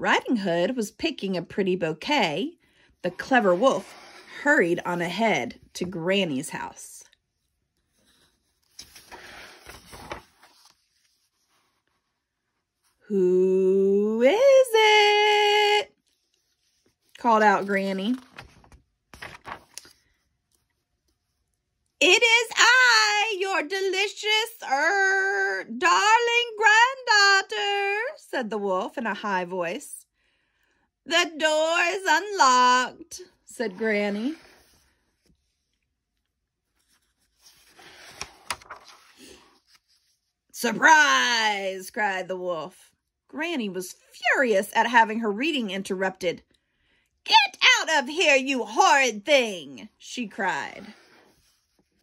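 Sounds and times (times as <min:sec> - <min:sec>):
book page turning: 0:03.1 - 0:06.0, 0:07.3 - 0:13.0, 0:16.0 - 0:21.3, 0:33.6 - 0:40.3, 0:50.8 - 0:52.0.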